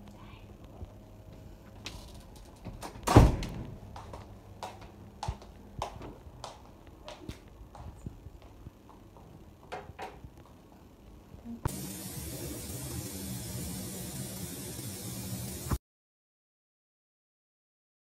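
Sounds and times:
footsteps clicking and knocking: 0.8s - 10.9s
door thumping: 2.7s - 3.9s
water running into bathtub: 11.7s - 15.8s.

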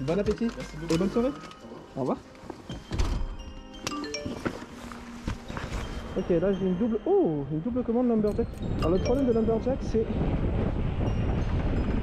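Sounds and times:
wind noise on microphone: 5.5s - 12.0s.

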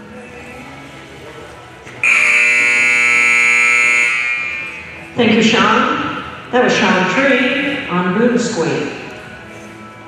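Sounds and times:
loud electric time buzzer: 2.0s - 5.1s.

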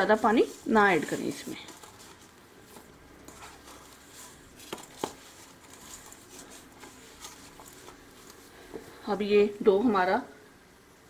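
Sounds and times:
dough squishing and patting: 0.0s - 9.3s.

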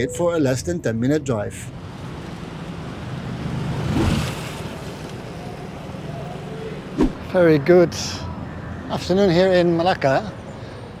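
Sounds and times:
low traffic hum: 0.0s - 11.0s
vehicle passing: 1.7s - 10.0s.

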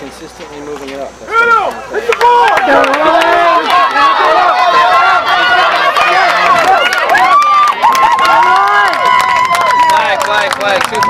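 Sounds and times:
long held yell: 1.3s - 10.2s
crowd shouting and cheering: 1.3s - 11.0s.

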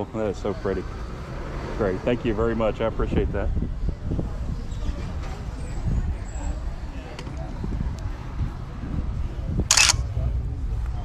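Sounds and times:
camera shutter click: 9.7s - 10.0s.

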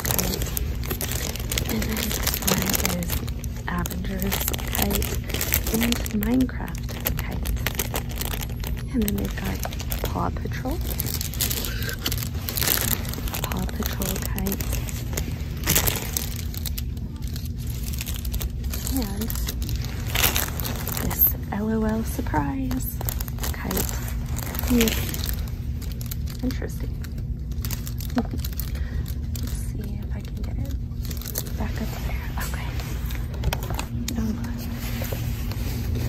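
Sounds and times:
plastic bags crinkling: 0.0s - 36.0s
steady low hum: 0.0s - 36.0s.

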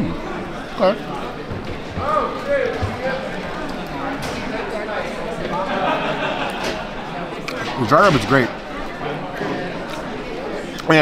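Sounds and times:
people talking indoors: 0.0s - 11.0s.

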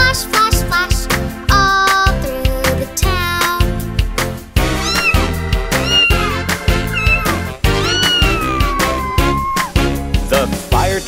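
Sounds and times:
upbeat children's music: 0.0s - 11.0s
cartoon cat meowing: 4.8s - 9.8s.

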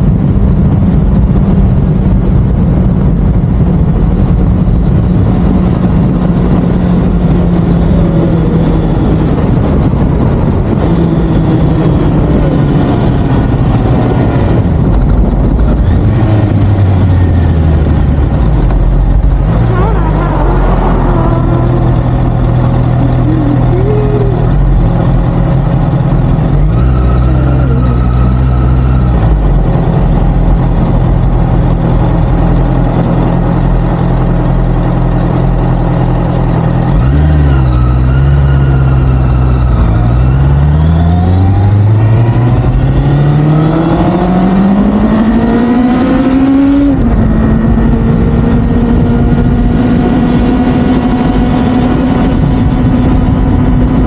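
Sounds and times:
motorcycle engine accelerating: 0.0s - 54.0s.

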